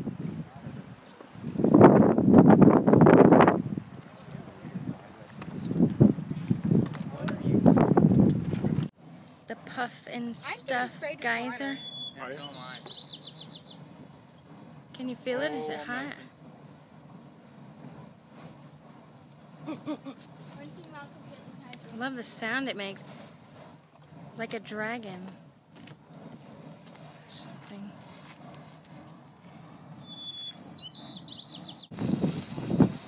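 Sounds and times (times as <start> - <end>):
steam vent rushing: 0.0 - 33.0
wind rumble on microphone: 0.0 - 33.0
small bird chirping: 11.7 - 13.9, 30.0 - 32.0.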